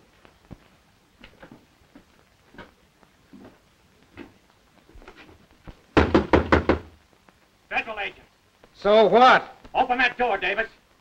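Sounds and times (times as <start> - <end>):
knocking on a wooden door: 6.0 - 7.0.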